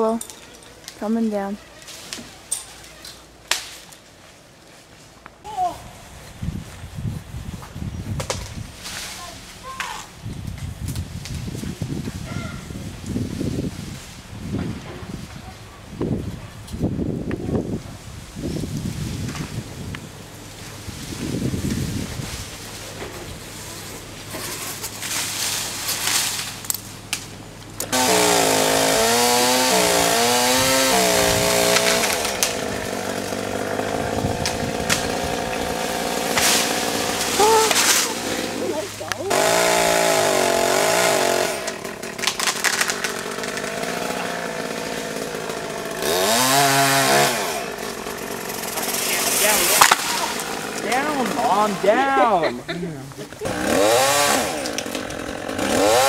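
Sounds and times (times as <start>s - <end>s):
chainsaw cutting and revving: 27.8s - 52.5s, 53.3s - 56.0s.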